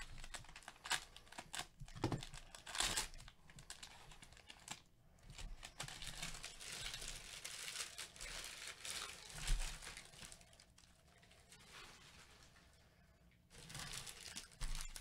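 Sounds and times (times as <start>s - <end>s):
plastic wrapping crinkling: 0.0s - 12.8s, 13.5s - 15.0s.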